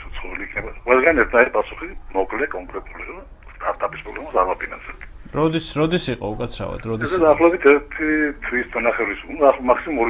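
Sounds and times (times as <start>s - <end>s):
person talking over phone line: 0.0s - 10.0s.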